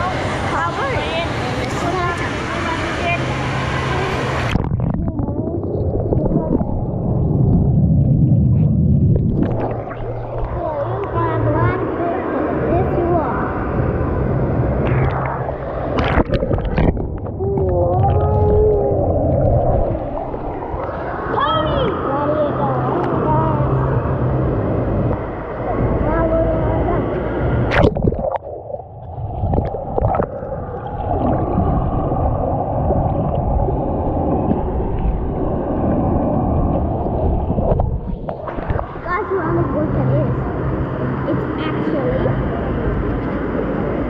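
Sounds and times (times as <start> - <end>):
hot tub jets bubbling: 0.0 - 44.0.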